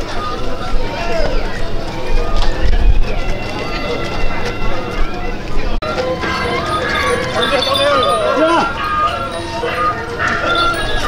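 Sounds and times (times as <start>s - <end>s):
people calling and talking: 0.0s - 11.0s
music: 1.8s - 11.0s.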